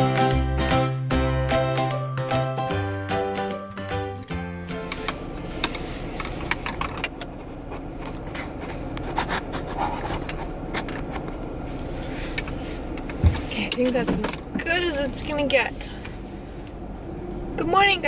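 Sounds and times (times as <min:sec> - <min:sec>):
car cabin hum: 0:04.2 - 0:18.0.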